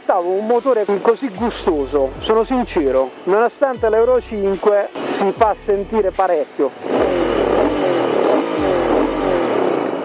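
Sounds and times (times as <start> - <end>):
motorcycle engine revs dropping: 6.8 - 9.8.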